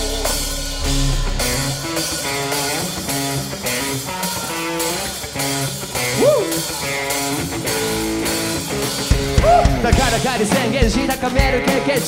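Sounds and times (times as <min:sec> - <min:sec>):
electric guitar chords: 0:00.0 - 0:12.0
kick drum beats: 0:09.1 - 0:11.6.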